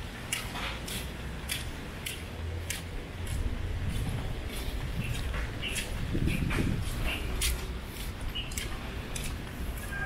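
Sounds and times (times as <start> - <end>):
footsteps on wet concrete: 0.0 - 10.0
wind rumble on microphone: 3.0 - 10.0.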